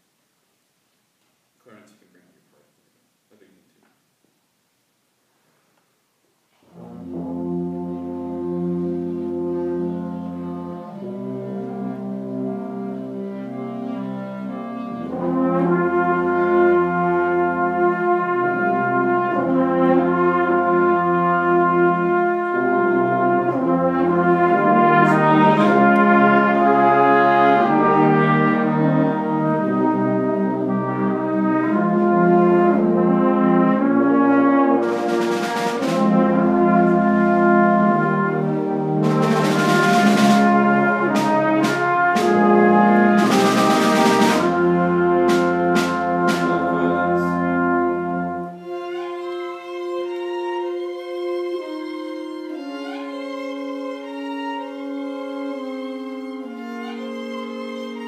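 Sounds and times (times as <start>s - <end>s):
trumpets and french horn: 6.6s - 58.0s
concert band playing: 6.8s - 49.4s.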